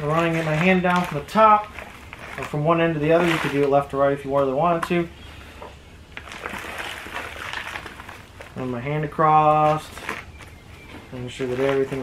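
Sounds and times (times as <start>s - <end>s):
hands rustling potting mix: 0.0s - 12.0s
light crackles: 0.0s - 12.0s.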